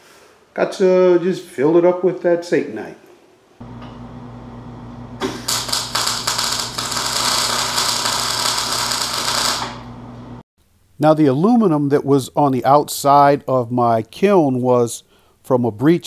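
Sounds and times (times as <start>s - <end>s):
electrical hum: 3.6s - 10.9s
welder arc crackling: 5.2s - 10.4s.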